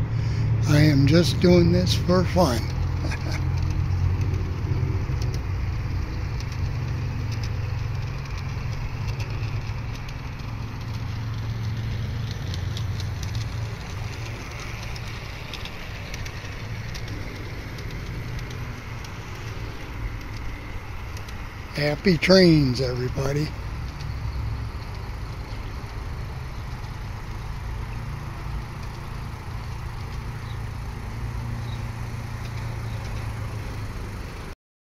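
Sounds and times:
model train motor hum: 0.0 - 34.6
wheels clicking on rails: 0.0 - 34.6.

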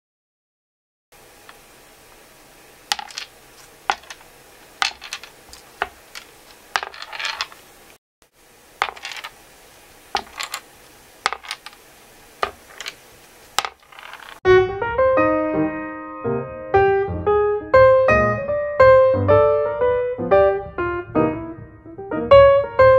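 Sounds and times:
rattling roll of balls: 2.9 - 7.7, 8.8 - 9.4, 10.1 - 11.8, 12.4 - 14.4
steel balls clicking on pegboard: 2.9 - 7.7, 8.8 - 9.4, 10.1 - 11.8, 12.4 - 13.0, 13.6 - 14.4
piano music: 14.5 - 22.9.

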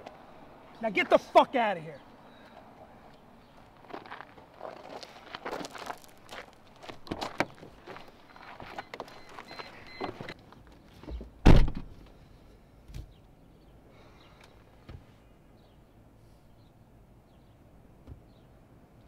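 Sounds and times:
footsteps crunching on gravel: 3.1 - 10.2
car door slamming: 11.4 - 12.0.

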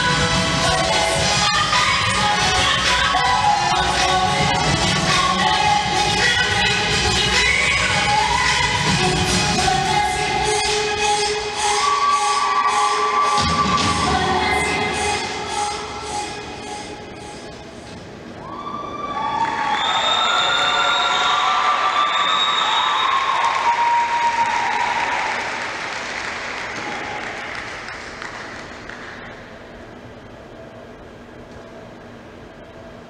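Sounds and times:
dance music with steady beat: 0.0 - 17.7
whooping cheers: 18.4 - 25.6
audience applause: 19.2 - 29.2.

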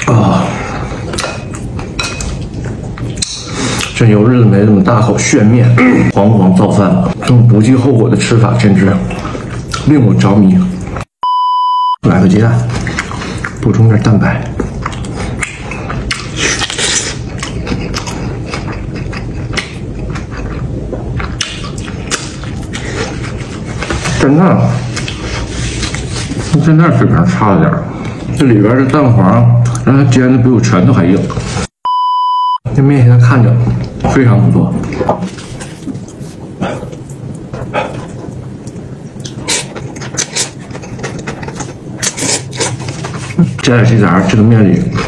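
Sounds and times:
wet mouth clicks: 3.0 - 4.0
man chewing and slurping noodles: 12.6 - 13.7, 14.5 - 26.7, 34.8 - 43.6.

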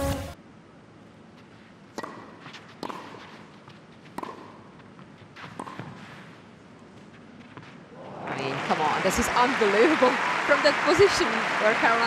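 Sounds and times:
quiet arena hush: 0.4 - 12.0
tennis racket hitting ball: 1.9 - 6.1.

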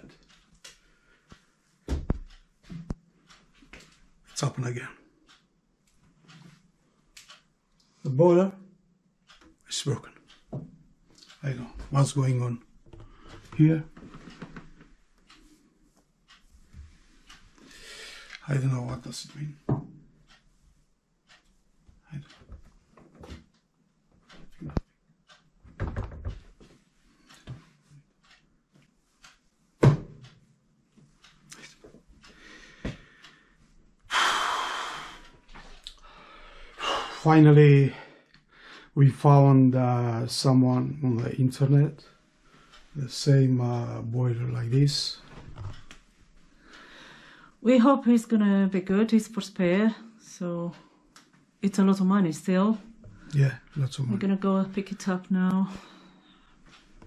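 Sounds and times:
man exhaling heavily: 34.1 - 35.2.

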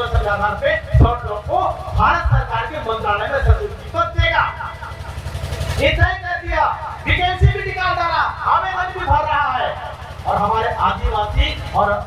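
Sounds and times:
man speaking into microphone: 0.0 - 5.0, 5.7 - 12.0.

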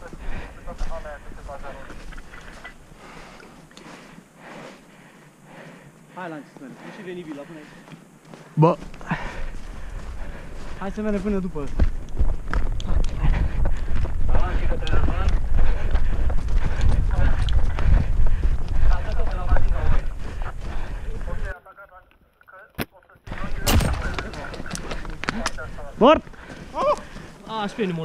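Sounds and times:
footsteps crunching through snow: 6.4 - 12.8, 15.0 - 21.5
wind rumbling on microphone: 11.4 - 21.5.

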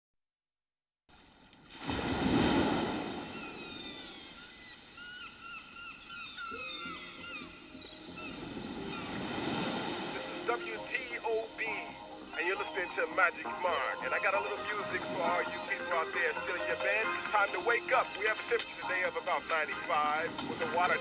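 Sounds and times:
ocean surf washing in: 1.8 - 4.8, 8.6 - 18.7, 19.6 - 21.0
birds chirping: 3.0 - 21.0.

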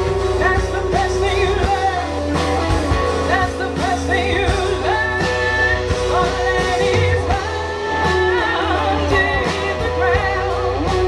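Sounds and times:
rock band playing: 0.0 - 11.0
woman singing: 0.2 - 11.0.

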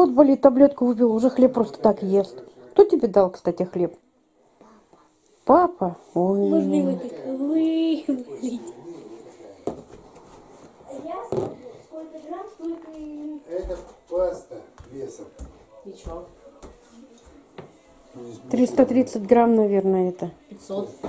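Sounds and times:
quiet indistinct talking: 5.9 - 21.0.

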